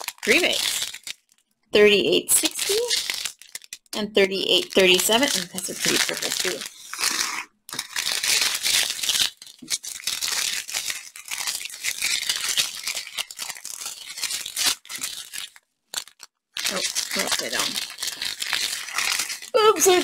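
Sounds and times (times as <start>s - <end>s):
plastic bags crinkling: 0.0s - 20.0s
tiny beads shifting inside bags: 0.0s - 20.0s.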